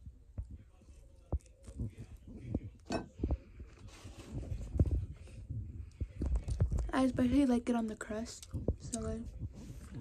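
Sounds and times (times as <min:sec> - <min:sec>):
chewing pizza: 0:00.6 - 0:03.8.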